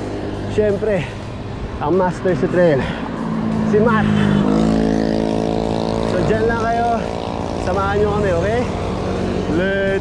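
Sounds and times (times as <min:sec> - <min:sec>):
vehicle engine droning: 0:00.0 - 0:10.0
wind and road noise: 0:00.0 - 0:10.0.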